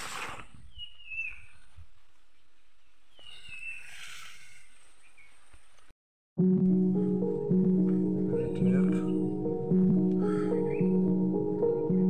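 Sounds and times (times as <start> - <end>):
rustle of plants: 0.0 - 5.9
bird chirping: 0.6 - 1.7, 2.8 - 4.3, 5.0 - 5.5.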